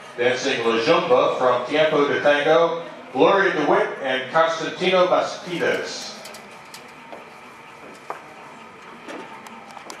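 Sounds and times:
crowd room tone: 0:00.0 - 0:10.0.

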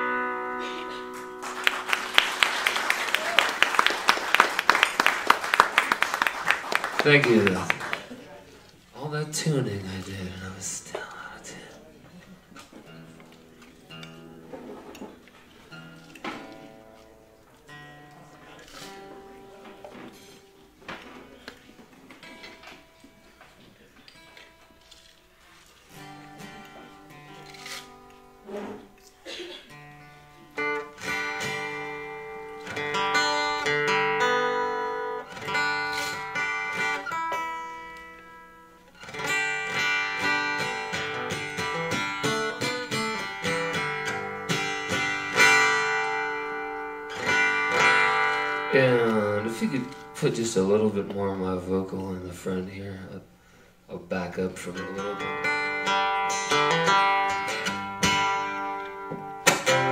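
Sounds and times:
acoustic guitar strings plucked: 0:00.0 - 0:01.9, 0:12.6 - 0:23.2, 0:25.9 - 0:52.2, 0:54.1 - 0:59.9
acoustic guitar chords strummed: 0:00.0 - 0:02.5, 0:12.6 - 0:53.0, 0:54.1 - 0:59.9.

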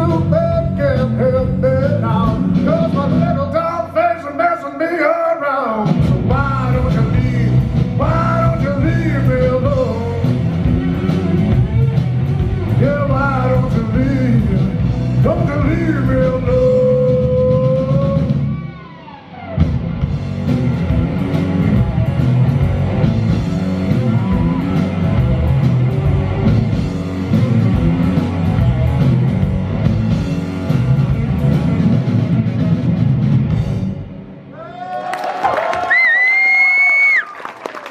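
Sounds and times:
drum kit: 0:00.0 - 0:04.0, 0:05.7 - 0:34.7
man singing: 0:00.0 - 0:11.5, 0:12.7 - 0:18.5
electric guitar: 0:05.7 - 0:34.6.

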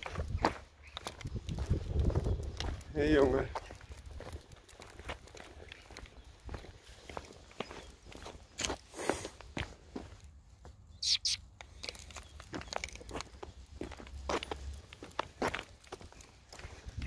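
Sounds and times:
footsteps on brick paving: 0:00.0 - 0:10.9, 0:11.6 - 0:17.0.

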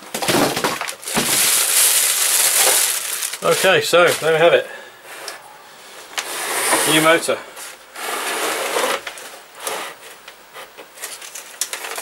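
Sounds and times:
packing being pulled off: 0:00.9 - 0:04.3
board scraping on wooden workbench: 0:06.2 - 0:07.3, 0:08.0 - 0:10.0.

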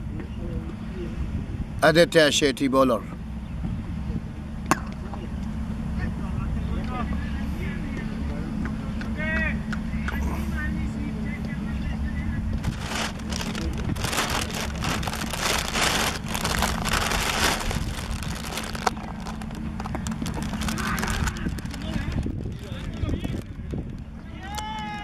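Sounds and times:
distant voices calling out: 0:05.2 - 0:25.0
low rumble: 0:12.5 - 0:24.2.

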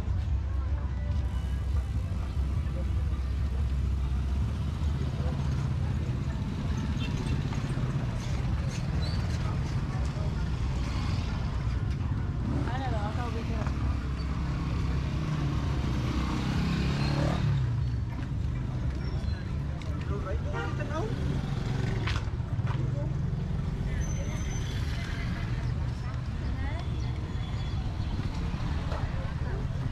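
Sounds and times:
people chattering: 0:00.0 - 0:29.9
motorcycles passing: 0:01.1 - 0:29.9.

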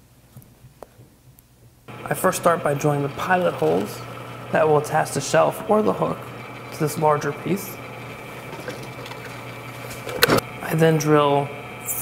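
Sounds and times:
drill bit boring through wood: 0:01.9 - 0:10.4
drill press humming: 0:01.9 - 0:12.0.

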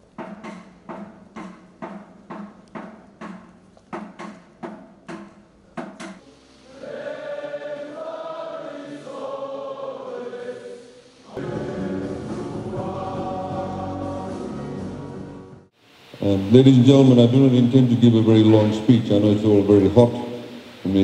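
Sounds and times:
drum beating steadily: 0:00.0 - 0:06.2
group of voices singing: 0:06.2 - 0:15.4.

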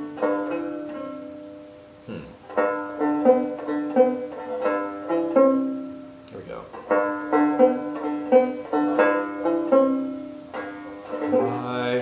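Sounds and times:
banjo strummed in chords: 0:00.0 - 0:01.8, 0:02.4 - 0:12.0.

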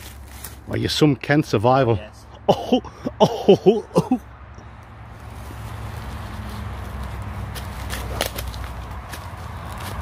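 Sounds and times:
footsteps through undergrowth: 0:00.0 - 0:00.8, 0:05.1 - 0:10.0
twigs snapping: 0:06.9 - 0:10.0.

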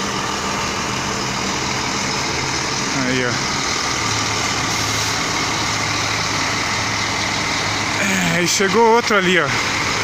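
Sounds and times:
diesel coach engine idling: 0:00.0 - 0:10.0.

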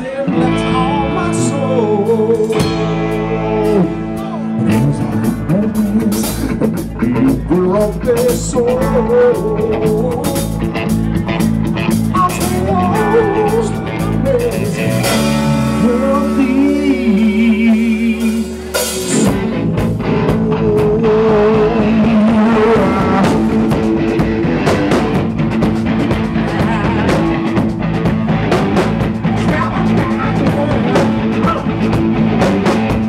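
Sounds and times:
live rock band playing: 0:00.0 - 0:33.0
drum kit and cymbals: 0:02.1 - 0:20.3, 0:21.3 - 0:33.0.

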